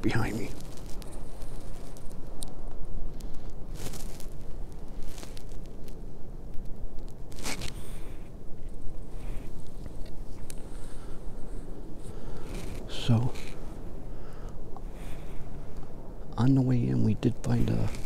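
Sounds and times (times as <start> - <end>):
clothing rustling against microphone: 0.1 - 2.4, 3.1 - 6.0, 7.2 - 14.0, 17.7 - 18.0.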